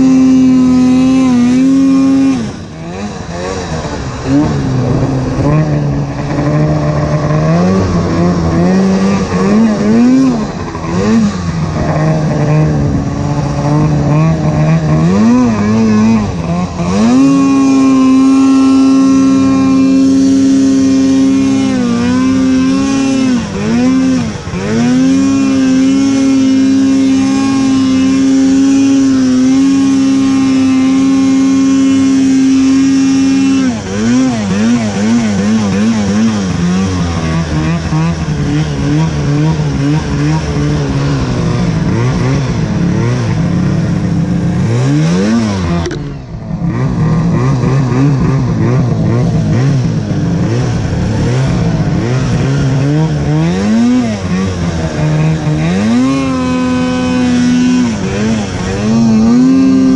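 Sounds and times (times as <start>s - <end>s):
snowmobile engine revving: 0.0s - 59.9s.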